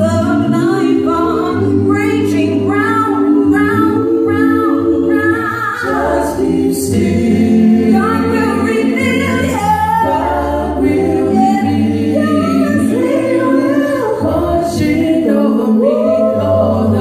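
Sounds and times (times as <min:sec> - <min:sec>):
a cappella group singing in harmony: 0:00.0 - 0:17.0.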